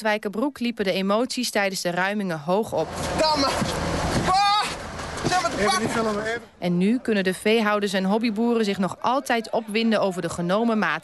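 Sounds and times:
noisy outdoor din: 0.0s - 11.0s.

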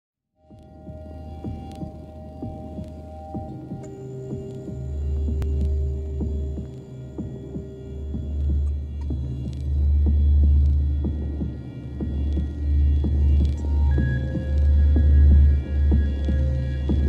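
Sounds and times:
deep low electronic hum: 0.4s - 17.0s
small clicks and ticks: 0.5s - 0.8s, 1.5s - 7.6s, 8.2s - 11.2s, 12.1s - 17.0s.

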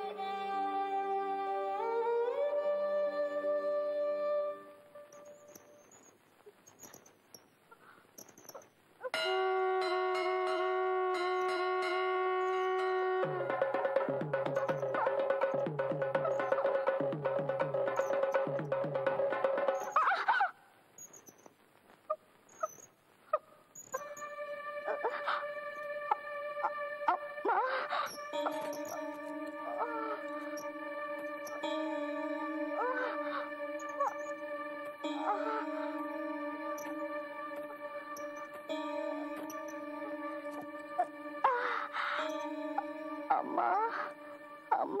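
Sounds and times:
faint ticks: 5.1s - 8.8s
film background music: 9.2s - 20.2s, 24.0s - 45.0s.

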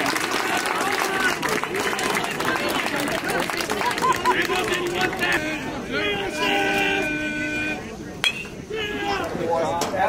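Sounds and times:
people shouting: 4.5s - 7.5s, 8.6s - 9.4s
metal bat hitting ball: 8.2s - 8.6s.

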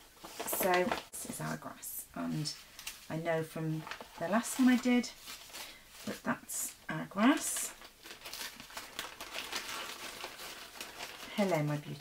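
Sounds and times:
plastic bag crinkling: 0.1s - 1.6s, 2.3s - 12.0s.

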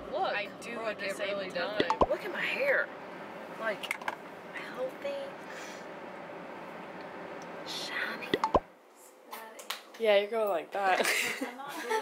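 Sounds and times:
quick pops with sliding pitch: 8.4s - 8.7s.

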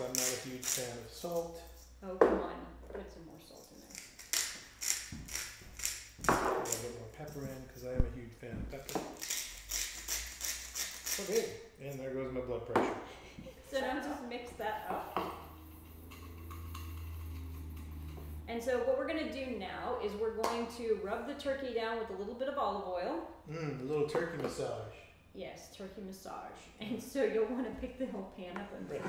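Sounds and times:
salt shaker rattling into bowl: 0.0s - 2.0s, 3.6s - 8.0s, 8.9s - 11.6s.

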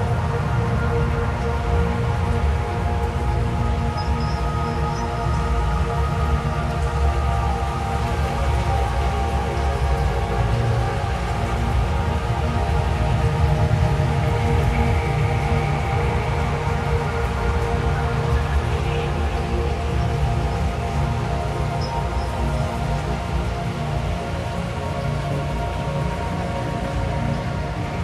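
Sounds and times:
layered held drone tones: 0.0s - 28.0s
rain-like hiss: 0.0s - 28.0s.

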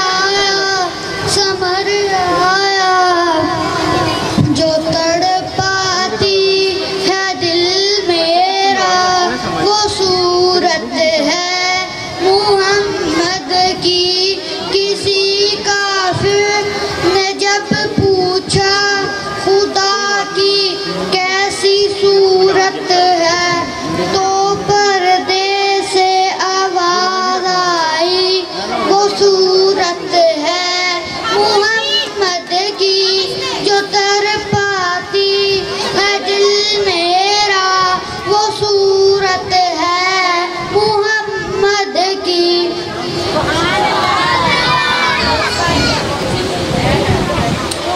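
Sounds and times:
boy singing into a microphone: 0.0s - 45.9s.

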